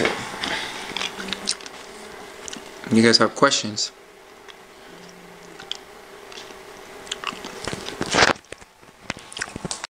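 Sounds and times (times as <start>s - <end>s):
faint steady hum: 0.0s - 9.9s.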